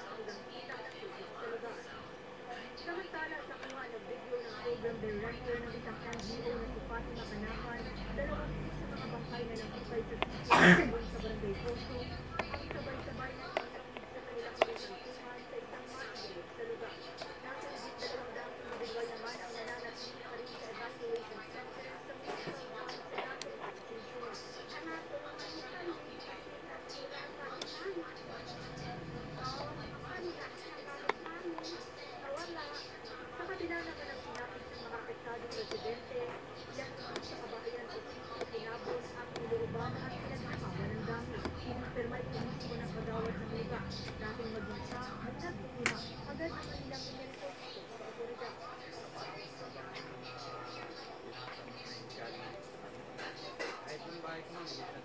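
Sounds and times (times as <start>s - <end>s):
indistinct background voices: 0.0s - 55.0s
low background speech: 0.0s - 55.0s.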